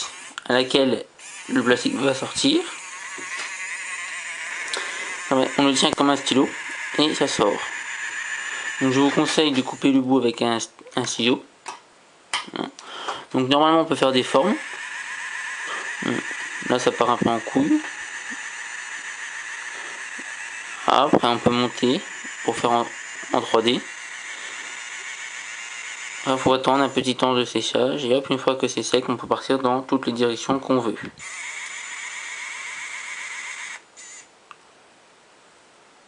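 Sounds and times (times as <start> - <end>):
small motor whirring: 0.0 - 0.4, 1.2 - 10.1, 14.0 - 27.8, 31.2 - 34.3.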